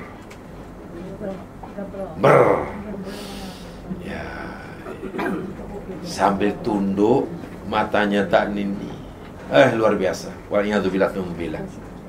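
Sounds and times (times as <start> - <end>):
man's loud vocal burst: 2.2 - 2.8.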